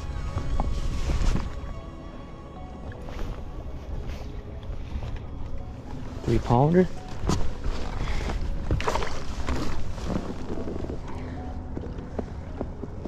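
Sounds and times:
small waves slapping boat: 0:07.2 - 0:11.2.

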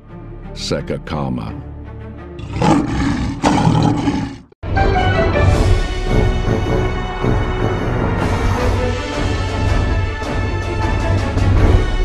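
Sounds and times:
background music: 0:00.0 - 0:12.0
lion roaring: 0:02.4 - 0:04.6.

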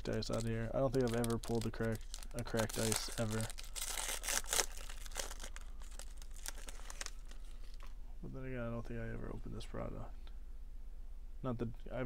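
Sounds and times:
foil wrapper crinkling: 0:00.0 - 0:07.9
cards rustling and clicking: 0:00.0 - 0:08.0
low hum: 0:00.0 - 0:12.0.

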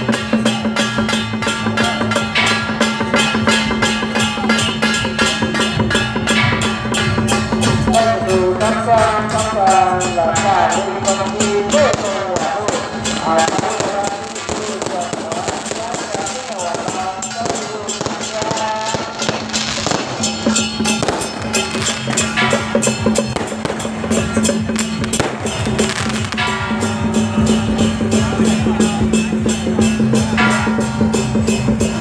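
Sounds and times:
firecrackers crackling: 0:00.0 - 0:32.0.

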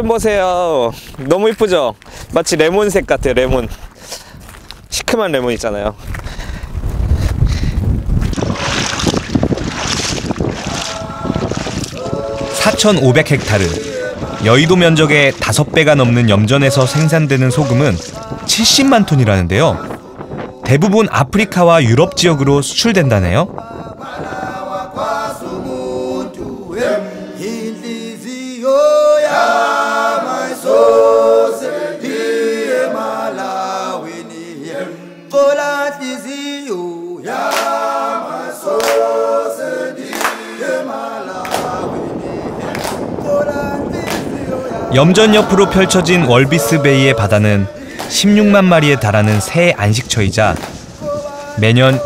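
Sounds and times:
wind buffeting microphone: 0:00.0 - 0:27.0, 0:40.5 - 0:52.0
feet wading in shallow water: 0:08.0 - 0:20.0
vocal group singing in harmony: 0:10.6 - 0:22.6, 0:23.5 - 0:49.8, 0:51.0 - 0:52.0.

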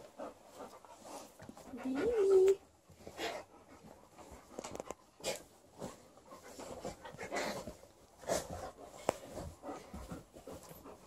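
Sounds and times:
dog panting and snuffling: 0:00.0 - 0:11.0.

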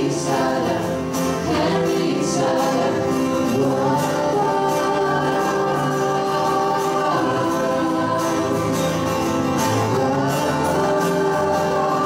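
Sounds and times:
acoustic guitars: 0:00.0 - 0:12.0
group singing long notes: 0:00.0 - 0:12.0.

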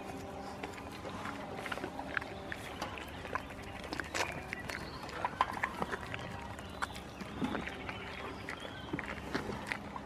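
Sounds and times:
goat chewing: 0:00.0 - 0:10.0.

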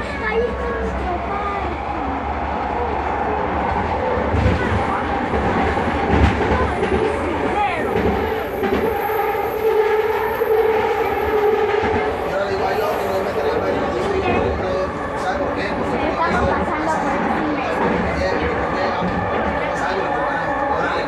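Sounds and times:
train wheels rumbling on rail: 0:00.0 - 0:21.0.

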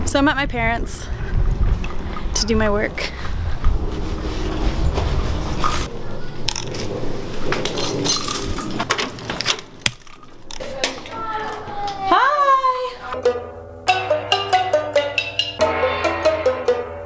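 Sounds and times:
wind buffeting microphone: 0:00.0 - 0:09.8
footsteps: 0:03.0 - 0:05.9
keys jingling on concrete: 0:07.8 - 0:08.8.

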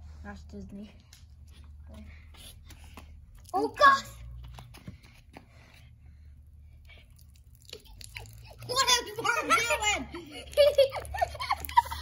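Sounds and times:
child's excited voice: 0:03.5 - 0:04.3, 0:08.5 - 0:10.3.

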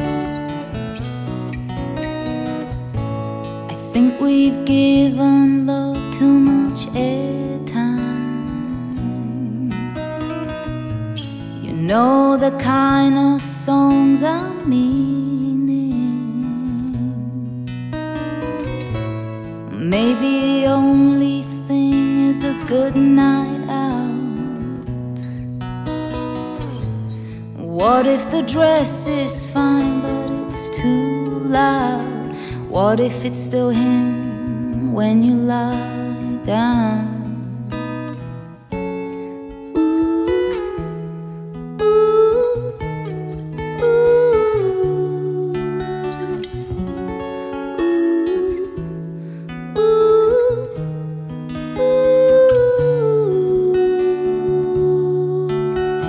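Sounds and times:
acoustic guitars plucking: 0:00.0 - 0:56.0.

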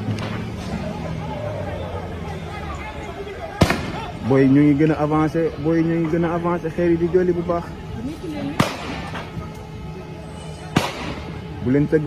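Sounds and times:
street noise: 0:00.0 - 0:12.0
voices: 0:00.0 - 0:12.0
sharp loud bang: 0:10.7 - 0:11.3.

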